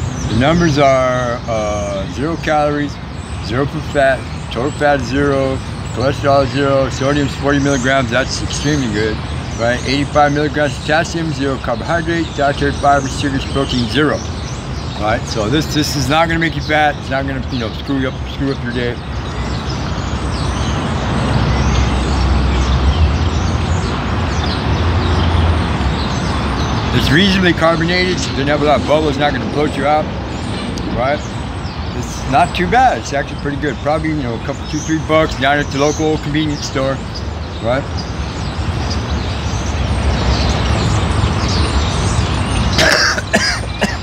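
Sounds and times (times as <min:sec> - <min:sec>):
man coughing and clearing throat: 0:42.7 - 0:44.0.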